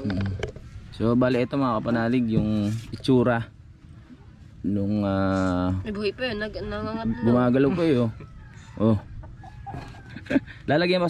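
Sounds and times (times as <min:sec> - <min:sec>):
chicken clucking: 0:06.9 - 0:10.5.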